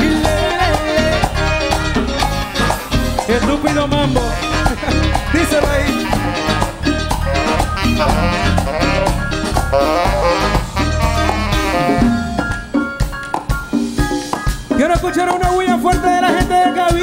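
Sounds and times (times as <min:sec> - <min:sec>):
latin dance band playing: 0:00.0 - 0:17.0.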